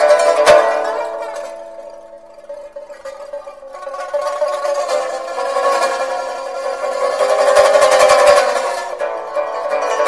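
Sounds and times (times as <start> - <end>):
plucked string instrumental music: 0.0 - 10.0.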